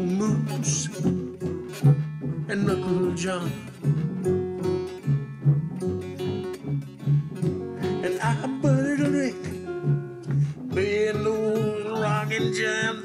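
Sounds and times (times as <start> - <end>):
slide diddley bow: 0.0 - 13.0
strummed acoustic guitar: 0.0 - 13.0
washtub bass plucking: 0.0 - 13.0.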